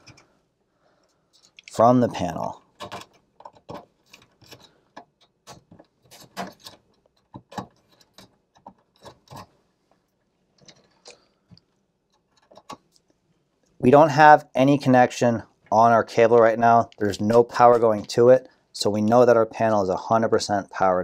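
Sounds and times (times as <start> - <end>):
wires clicking and scraping: 0.0 - 13.9.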